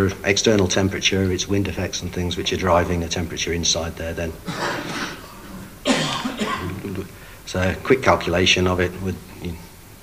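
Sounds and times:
man coughing: 4.4s - 6.9s.

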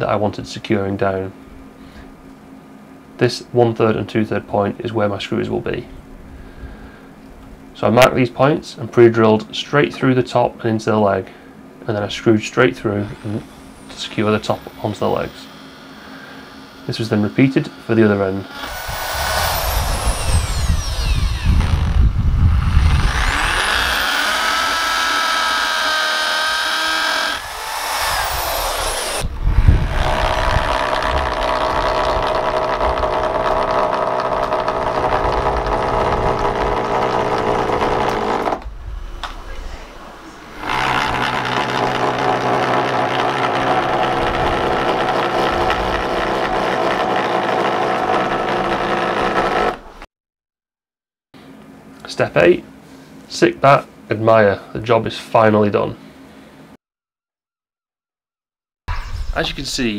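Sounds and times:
electric drill whining: 18.5s - 38.7s, 40.6s - 50.1s.

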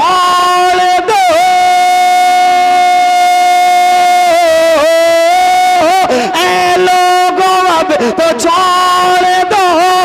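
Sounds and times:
man singing a long high note: 0.0s - 10.0s.

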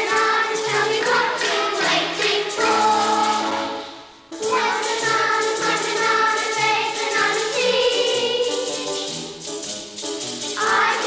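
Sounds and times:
children's choir singing: 0.0s - 9.3s, 10.5s - 11.0s.

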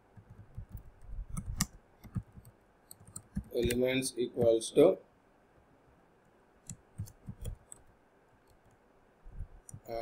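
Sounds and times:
faint keyboard keystrokes: 0.1s - 3.8s, 6.6s - 8.8s.

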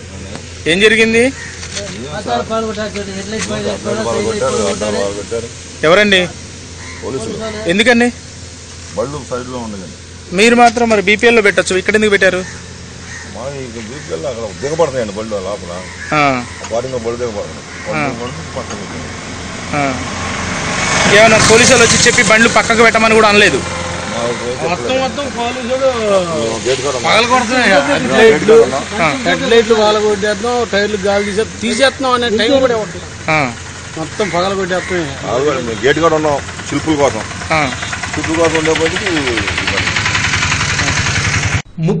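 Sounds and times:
voice: 0.0s - 6.4s, 7.0s - 8.2s, 8.9s - 12.5s, 13.4s - 42.0s
diesel engine idling: 0.0s - 41.8s
man talking loudly: 21.0s - 33.6s.

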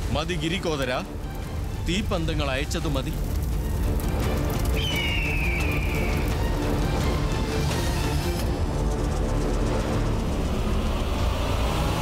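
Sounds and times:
dramatic background score: 0.0s - 12.0s.

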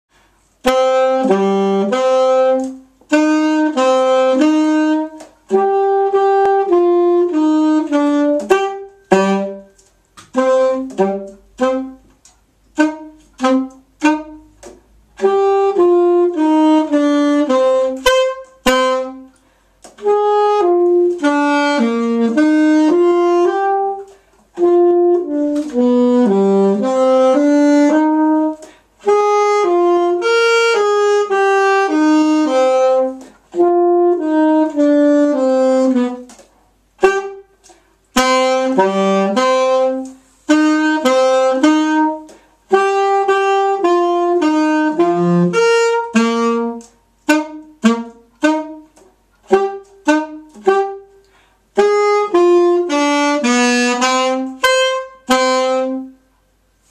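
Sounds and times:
alto saxophone solo: 0.2s - 56.9s.

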